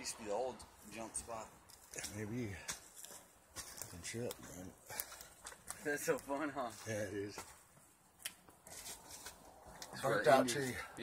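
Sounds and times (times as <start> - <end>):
faint rustling in twigs and dirt: 0.6 - 11.0.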